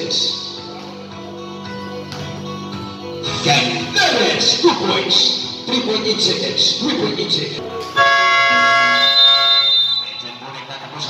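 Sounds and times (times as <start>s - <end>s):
loud electronic tone: 8.0s - 10.4s.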